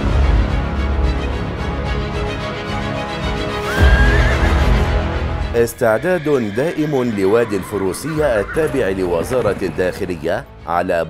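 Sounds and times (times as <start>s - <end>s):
background music: 0.0s - 11.0s
horse whinny: 3.6s - 10.0s.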